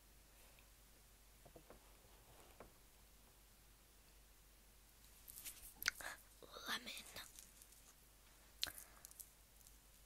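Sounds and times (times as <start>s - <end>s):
girl whispering: 5.9s - 7.4s
candy wrapper rustling: 6.8s - 8.0s, 8.6s - 10.0s.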